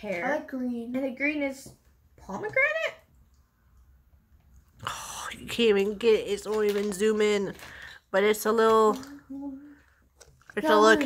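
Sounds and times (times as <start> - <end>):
person talking: 10.5 - 11.0.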